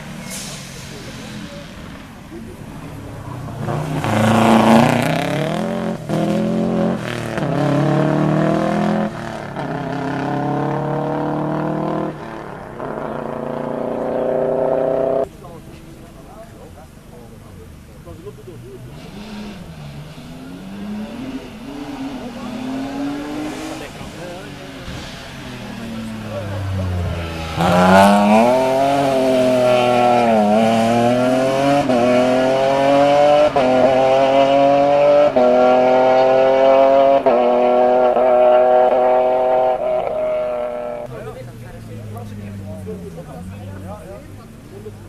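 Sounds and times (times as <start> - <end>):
rally car engine accelerating: 0.0 - 16.8, 17.4 - 45.0
gear changes: 12.2 - 15.7.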